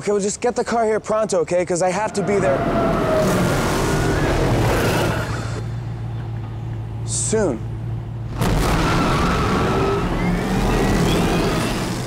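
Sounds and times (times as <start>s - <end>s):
car engine rumble and whine: 2.0s - 12.0s.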